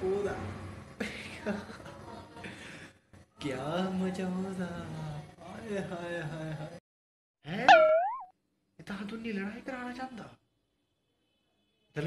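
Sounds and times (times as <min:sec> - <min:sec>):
cartoon upward pitch sweep: 0:07.6 - 0:08.3.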